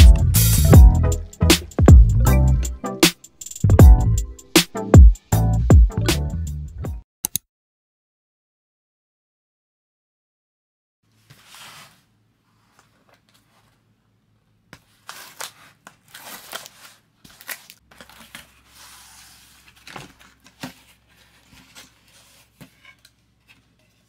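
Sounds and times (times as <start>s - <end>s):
cardboard flaps scraping: 11.2s - 13.8s, 14.9s - 23.7s
tape tearing: 14.9s - 23.2s.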